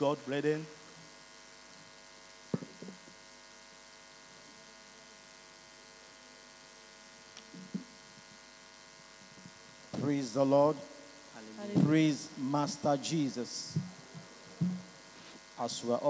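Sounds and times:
electrical buzz: 0:00.0 - 0:16.0
short knock: 0:14.6 - 0:14.8.

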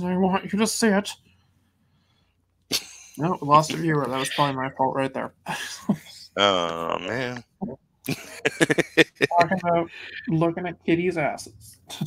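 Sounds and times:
person speaking: 0:03.2 - 0:10.8.

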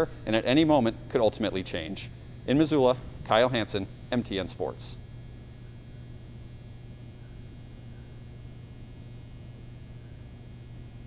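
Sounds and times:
faint high whine and hiss: 0:00.0 - 0:11.0
low electrical hum: 0:00.0 - 0:11.0.

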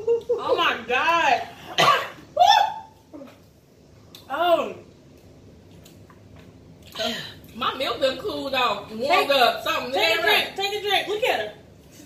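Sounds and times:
cough: 0:01.8 - 0:02.2.

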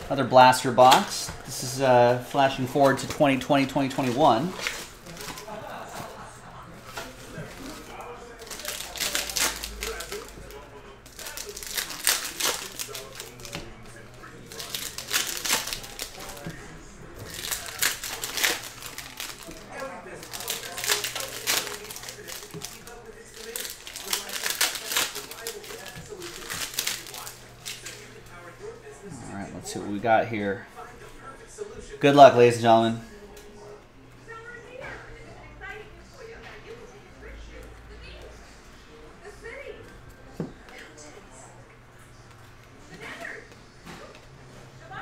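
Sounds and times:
plastic wrappers crinkling and tearing: 0:02.4 - 0:06.2, 0:06.8 - 0:28.4.

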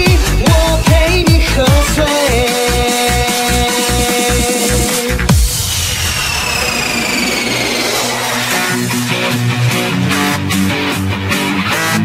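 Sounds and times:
jet-like noise sweep: 0:04.0 - 0:10.3.

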